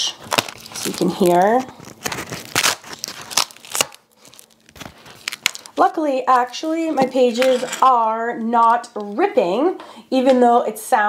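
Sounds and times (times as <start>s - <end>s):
sticky pages peeling apart: 0.1s - 6.8s.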